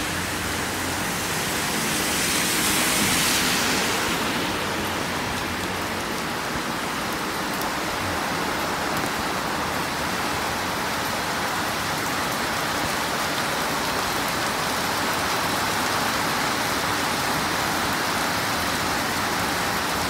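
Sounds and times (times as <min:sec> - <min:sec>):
heavy rain on road: 0:00.0 - 0:20.0.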